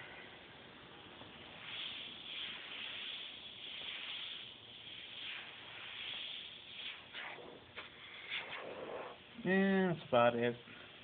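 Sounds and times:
airbrush spraying paint: 0:01.4 - 0:09.2.

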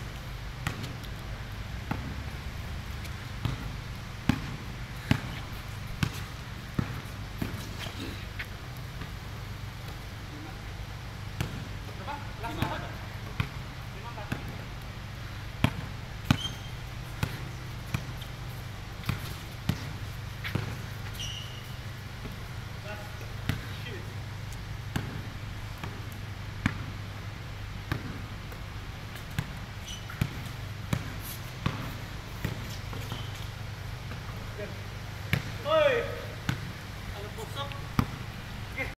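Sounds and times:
steady low hum: 0:00.0 - 0:38.9
basketball bouncing on concrete: 0:00.6 - 0:01.1, 0:01.8 - 0:02.2, 0:03.0 - 0:07.8, 0:11.4 - 0:11.7, 0:12.5 - 0:14.7, 0:15.6 - 0:18.4, 0:19.0 - 0:22.4, 0:23.4 - 0:23.8, 0:24.9 - 0:27.0, 0:27.8 - 0:28.6, 0:29.2 - 0:33.5, 0:35.3 - 0:35.6, 0:36.5 - 0:36.7, 0:37.3 - 0:38.2.

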